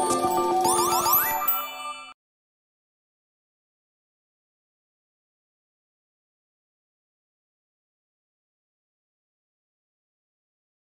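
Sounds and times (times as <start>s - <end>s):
rising sliding chime tones: 0.0s - 2.2s.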